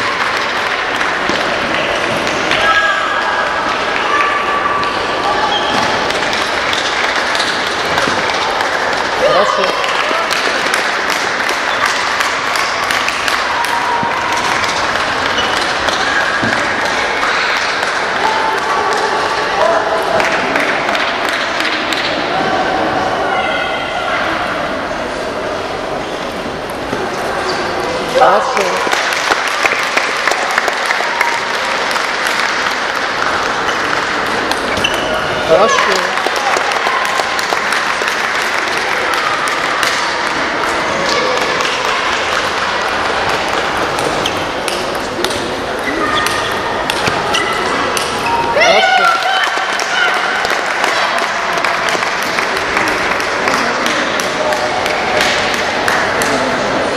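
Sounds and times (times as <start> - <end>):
murmur of voices: 0.0 - 56.9.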